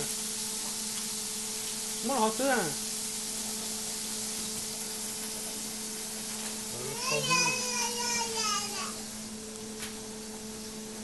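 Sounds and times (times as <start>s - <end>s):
patty sizzling on griddle: 0.0s - 11.0s.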